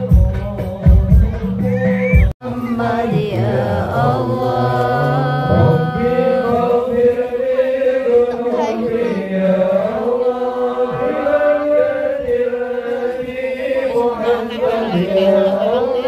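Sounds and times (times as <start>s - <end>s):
men chanting through loudspeakers: 2.4s - 16.0s.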